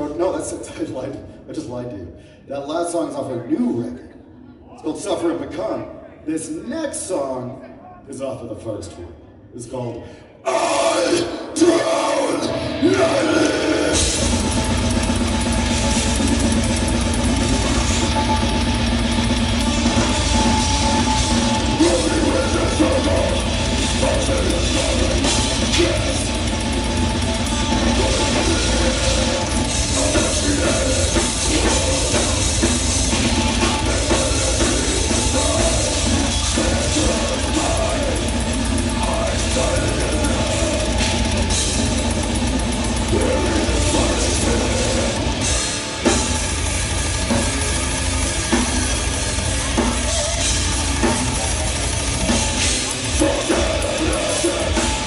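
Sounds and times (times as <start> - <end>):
distorted electric guitars: 10.5 - 55.0
pounding drum kit: 12.4 - 55.0.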